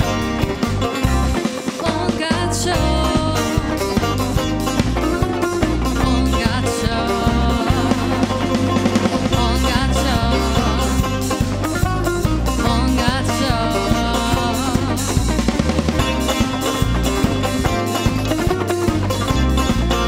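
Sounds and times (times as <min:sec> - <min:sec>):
bass line: 0:00.0 - 0:20.0
drum kit beat: 0:00.0 - 0:20.0
plucked lute melody: 0:00.0 - 0:20.0.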